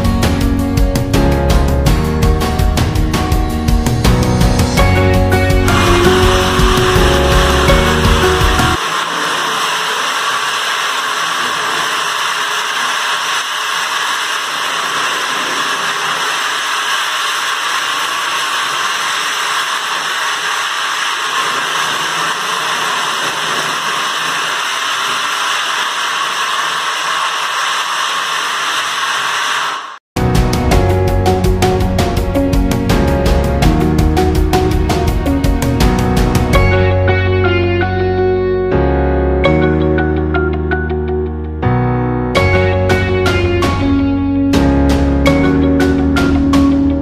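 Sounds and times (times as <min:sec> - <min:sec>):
music: 0:00.0 - 0:08.8, 0:30.2 - 0:47.0
floor machine grinding concrete: 0:04.0 - 0:30.0.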